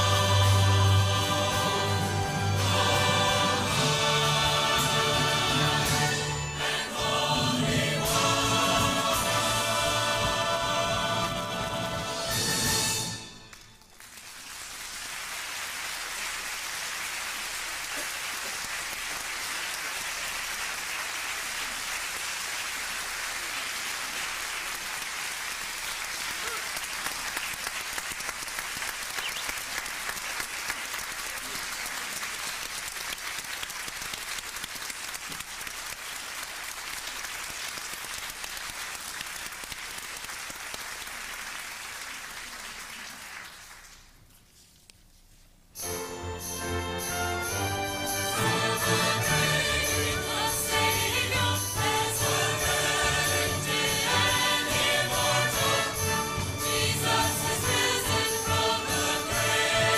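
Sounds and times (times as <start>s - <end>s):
large audience applauding: 13.5s - 44.2s.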